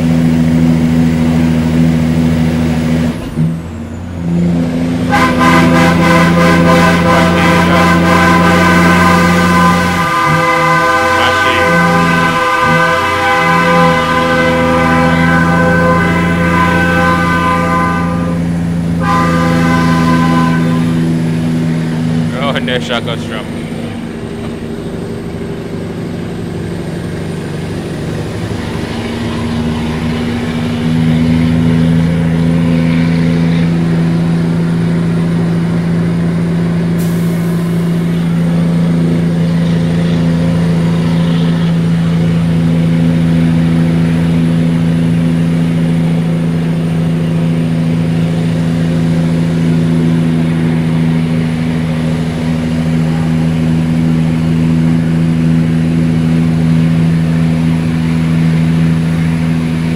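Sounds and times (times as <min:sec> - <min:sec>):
diesel truck engine under load: 0:00.0 - 0:59.9.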